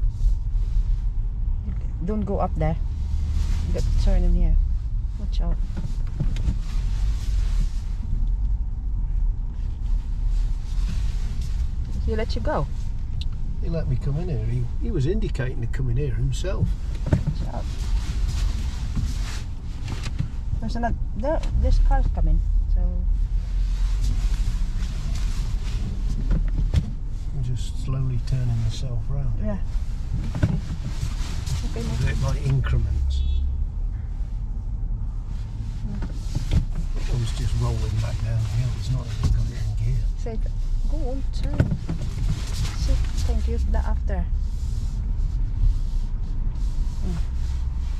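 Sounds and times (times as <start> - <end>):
car engine and road rumble: 0.0 - 47.9.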